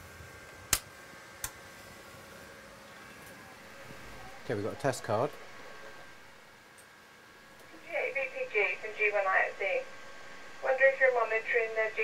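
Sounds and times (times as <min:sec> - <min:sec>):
voice over radio loudspeaker: 0:03.7 - 0:06.0.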